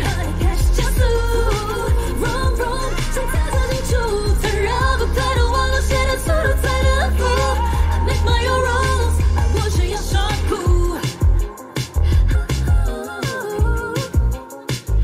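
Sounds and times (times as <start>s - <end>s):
backing track with heavy bass beat: 0.0s - 15.0s
woman singing into a microphone: 0.0s - 15.0s.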